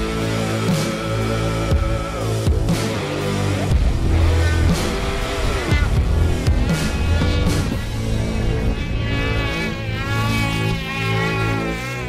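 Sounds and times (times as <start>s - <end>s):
music with sustained bass notes: 0.0s - 12.0s
snowmobile engine revving: 0.0s - 12.0s.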